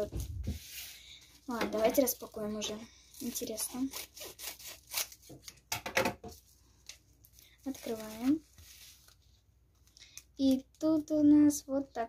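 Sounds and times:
scissors cutting plastic mailer: 0:03.3 - 0:05.3.

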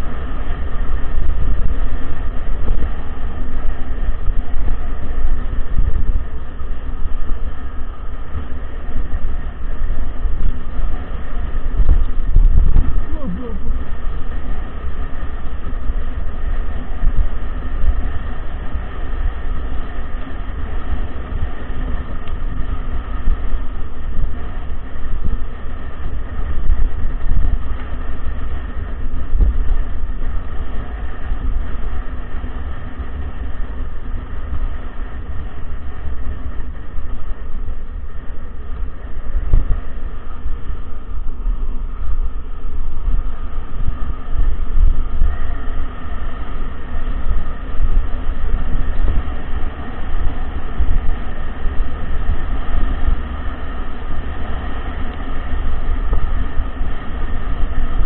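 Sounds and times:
bike rumbling on dirt track: 0:00.0 - 0:58.0
wind buffeting microphone: 0:00.0 - 0:58.0.

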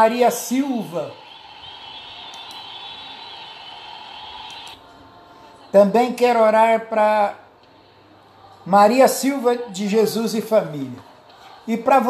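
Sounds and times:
faint high whine: 0:00.0 - 0:05.2.

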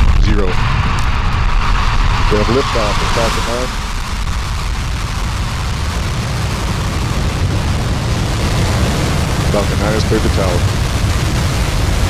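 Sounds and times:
rocket engines roaring: 0:00.0 - 0:12.0.

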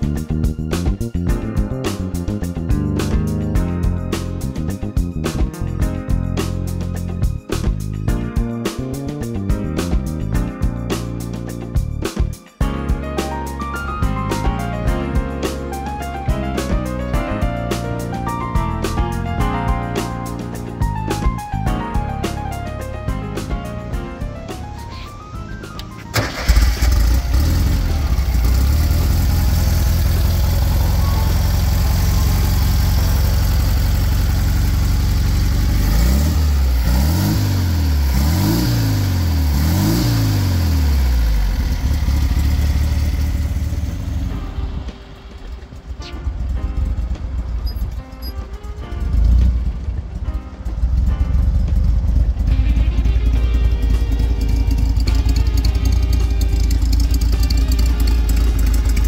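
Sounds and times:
car engine revving: 0:25.6 - 0:47.8.

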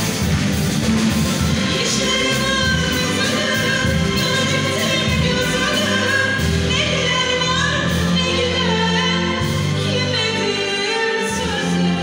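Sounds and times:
string orchestra: 0:00.0 - 0:12.0
woman singing classical with vibrato: 0:01.6 - 0:12.0.

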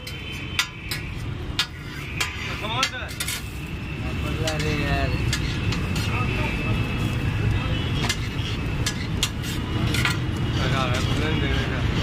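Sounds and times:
utensil clicking on steel griddle: 0:08.0 - 0:10.2.

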